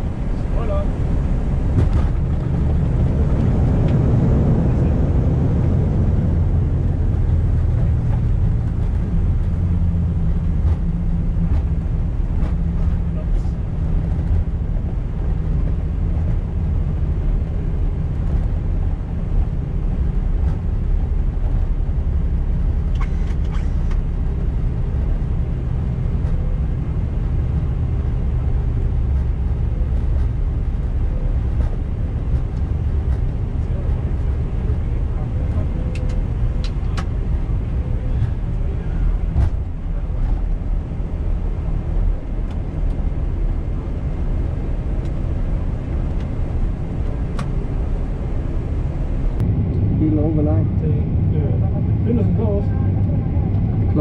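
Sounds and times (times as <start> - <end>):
airliner engine rumble: 0.0 - 54.0.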